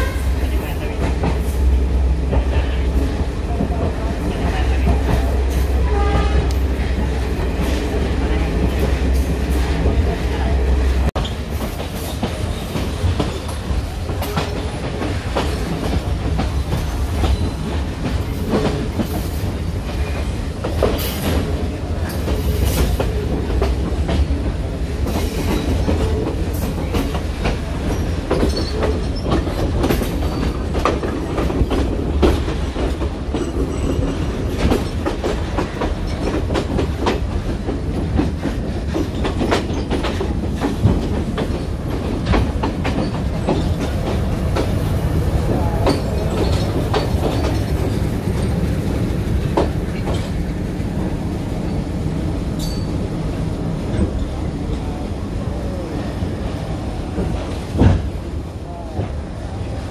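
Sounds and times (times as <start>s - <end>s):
train rumble: 0.0s - 59.9s
train wheels clattering on rails: 0.0s - 59.9s.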